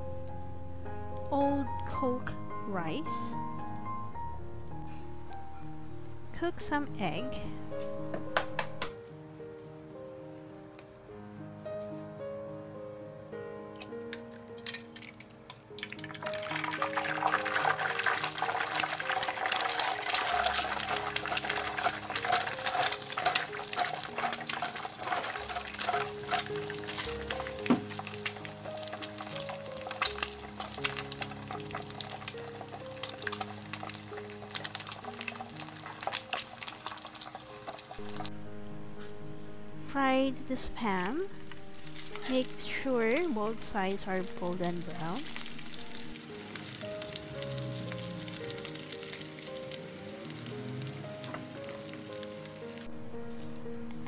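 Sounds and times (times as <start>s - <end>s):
background music: 0.0s - 54.0s
egg sizzling in hot oil: 14.2s - 38.3s, 40.6s - 52.9s.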